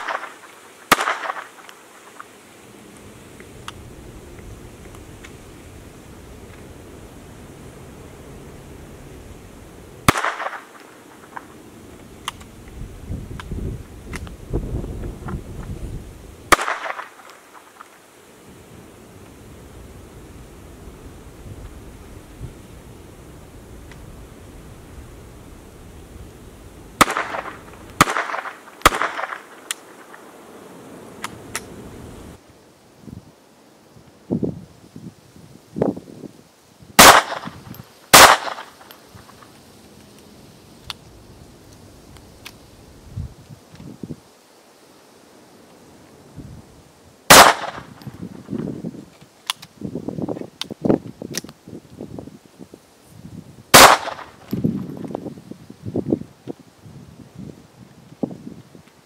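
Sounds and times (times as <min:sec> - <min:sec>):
pistol shots: 0:00.0 - 0:01.6, 0:10.0 - 0:10.8, 0:16.5 - 0:17.3, 0:27.0 - 0:29.6, 0:37.0 - 0:38.9, 0:47.3 - 0:48.0, 0:53.8 - 0:54.4.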